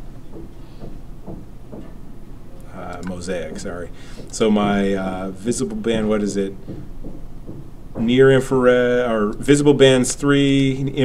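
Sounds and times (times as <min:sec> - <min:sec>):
low room hum: 0:00.0 - 0:11.0
soft low bumps: 0:02.8 - 0:08.4.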